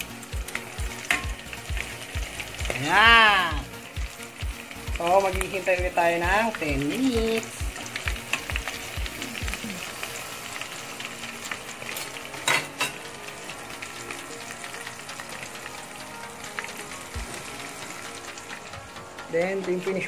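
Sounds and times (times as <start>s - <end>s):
oil sizzling while deep-frying: 0.0s - 20.0s.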